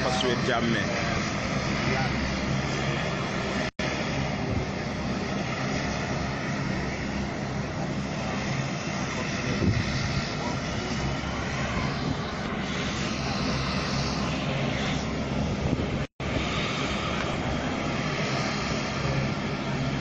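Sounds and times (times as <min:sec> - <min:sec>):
aircraft engines running: 0:00.0 - 0:20.0.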